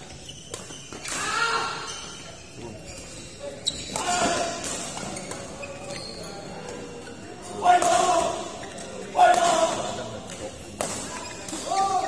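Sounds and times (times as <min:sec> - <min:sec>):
voices in background: 0:00.0 - 0:12.0.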